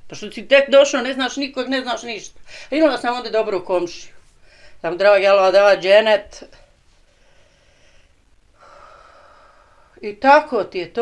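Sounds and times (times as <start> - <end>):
person speaking: 0.0 - 6.8, 10.0 - 11.0
faint breath: 2.4 - 2.7, 4.3 - 4.8, 6.9 - 10.0.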